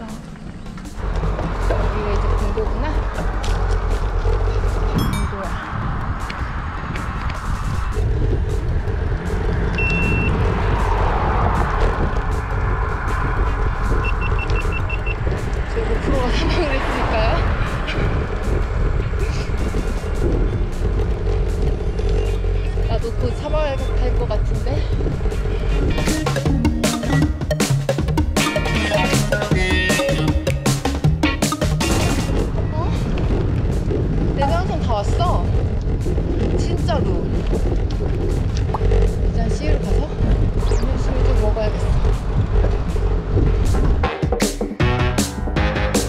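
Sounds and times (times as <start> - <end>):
wind rushing over microphone: 0.0 - 26.3, 31.9 - 44.9
high beeps: 5.0 - 5.5, 9.8 - 10.4, 14.0 - 15.2, 40.6 - 41.3.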